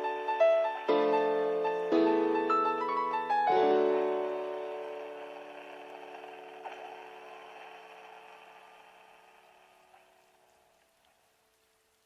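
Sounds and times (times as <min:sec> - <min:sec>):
piano chord ringing: 0:00.0 - 0:09.2
faint steady hiss: 0:00.0 - 0:12.0.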